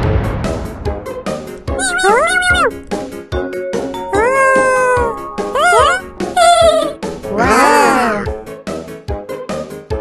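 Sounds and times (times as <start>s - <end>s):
upbeat children's music: 1.0s - 10.0s
high-pitched cartoon vocalisation: 1.7s - 2.8s, 4.1s - 8.4s.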